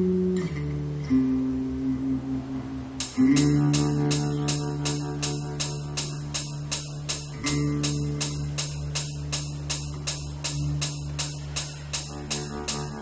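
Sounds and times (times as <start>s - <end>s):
sustained low drone notes: 0.0s - 13.0s
steady ticking pulse: 3.0s - 13.0s.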